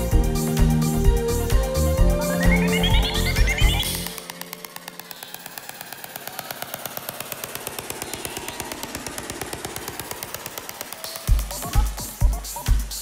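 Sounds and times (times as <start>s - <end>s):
drum machine clicks ticking: 2.2s - 13.0s.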